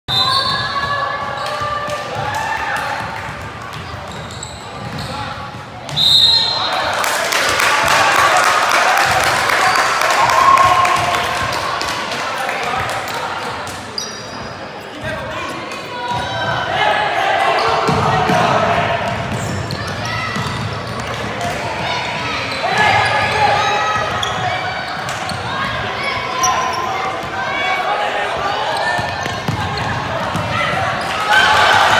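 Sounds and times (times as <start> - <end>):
sneakers squeaking: 0.1 - 2.0, 2.8 - 6.7, 13.0 - 15.2, 17.2 - 27.6, 28.3 - 31.4
voices echoing in gym: 0.1 - 31.9
high shoe squeak: 4.1 - 5.3, 14.0 - 14.6.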